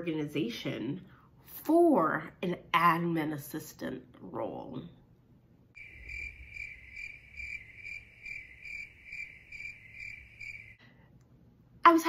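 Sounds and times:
cricket chirping: 0:05.8 - 0:10.8.

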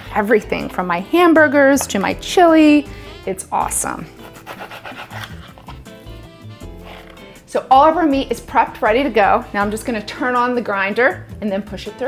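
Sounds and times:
background music: 0:00.0 - 0:12.0
knife sawing through meat: 0:04.1 - 0:06.0, 0:06.6 - 0:07.3.

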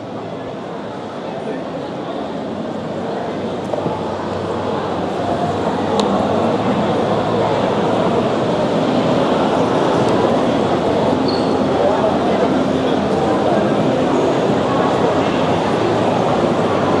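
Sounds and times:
crowd voices din: 0:00.0 - 0:17.0.

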